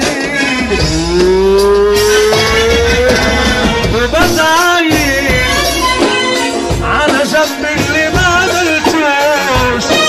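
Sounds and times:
keyboard and percussion music: 0.0s - 10.0s.

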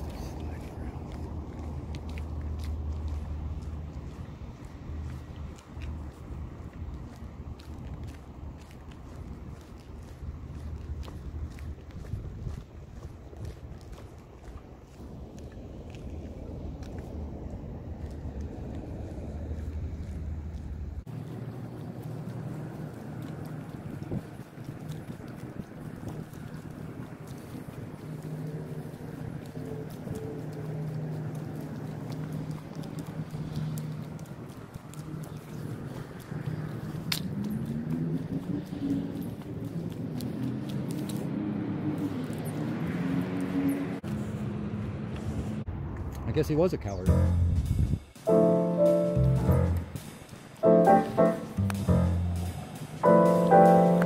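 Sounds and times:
wind buffeting microphone: 0.0s - 43.0s, 43.6s - 48.2s
vehicle engine running: 47.1s - 50.0s, 50.6s - 54.0s.

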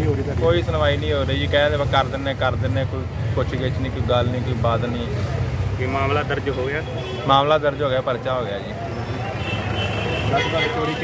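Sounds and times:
men talking: 0.0s - 11.0s.

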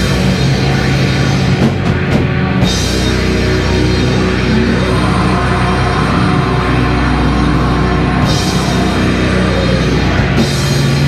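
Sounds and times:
distorted guitars: 0.0s - 11.0s
drum kit: 0.0s - 11.0s.

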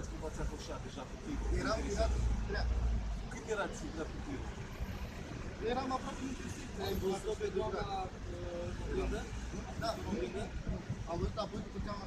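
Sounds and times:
road traffic rumble: 0.0s - 12.0s
people talking: 5.6s - 12.0s.

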